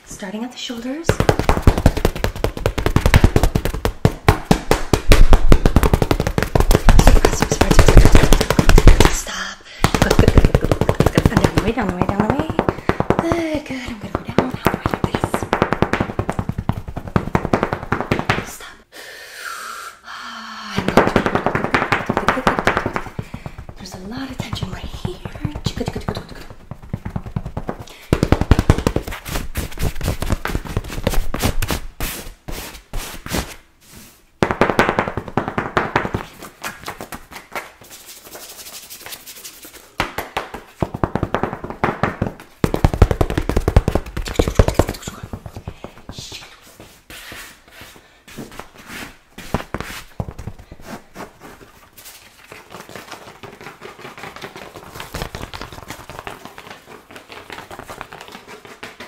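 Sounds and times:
tools tapping on a knit blanket: 0:09.9 - 0:18.2.

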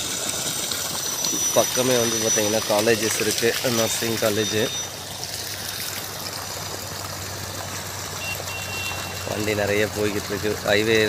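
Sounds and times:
low hum: 0:00.0 - 0:06.2
water rushing from pump outlet: 0:00.0 - 0:11.0.

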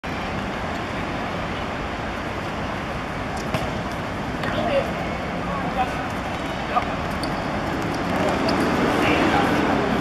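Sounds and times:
outdoor rumble and hiss: 0:00.0 - 0:10.0.

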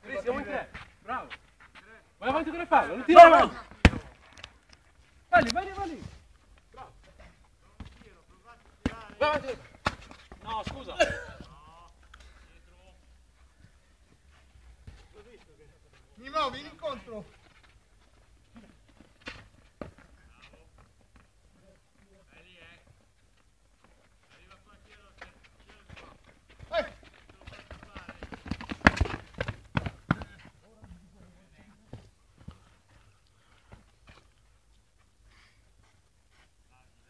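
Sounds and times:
voices calling: 0:00.0 - 0:19.1, 0:19.8 - 0:33.7
ball kicks: 0:03.7 - 0:04.3, 0:08.7 - 0:11.5, 0:25.2 - 0:32.6
running footsteps on turf: 0:23.8 - 0:34.9
sharp knocks of players: 0:25.9 - 0:30.5.

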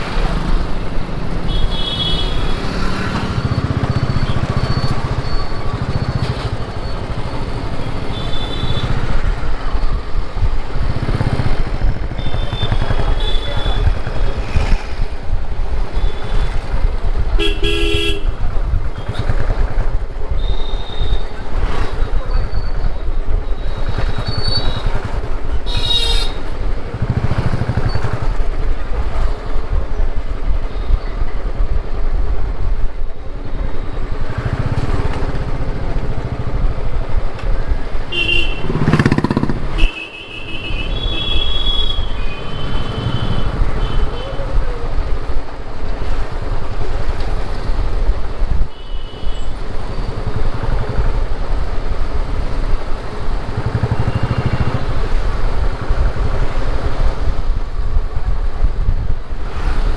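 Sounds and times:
vehicle horn toots: 0:17.4 - 0:18.3, 0:25.7 - 0:26.4
motorcycle engine running: 0:23.8 - 0:29.4, 0:38.4 - 0:40.0, 0:52.3 - 0:56.6.

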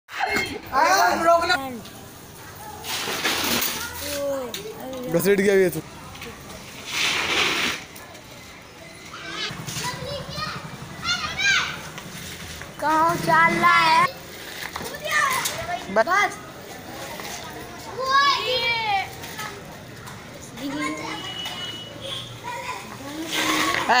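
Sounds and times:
children shouting and calling: 0:02.4 - 0:06.7, 0:08.0 - 0:12.1, 0:12.7 - 0:14.1, 0:14.8 - 0:24.0
bicycle tyre skidding on concrete: 0:02.6 - 0:04.4, 0:06.6 - 0:08.0, 0:09.2 - 0:15.8, 0:22.4 - 0:24.0.

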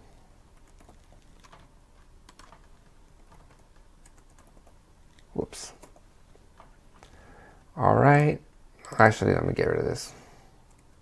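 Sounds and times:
faint keyboard typing: 0:00.1 - 0:07.2, 0:08.0 - 0:09.4, 0:10.6 - 0:11.0.

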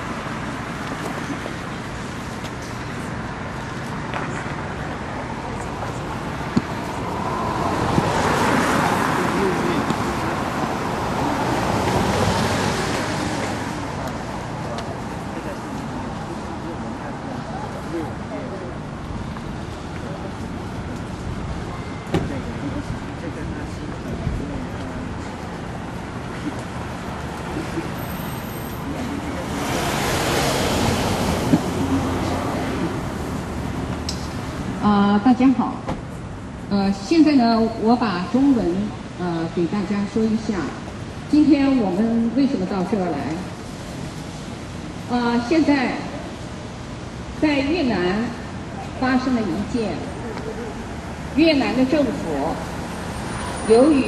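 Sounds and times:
car passing: 0:04.3 - 0:18.8, 0:24.5 - 0:34.9.

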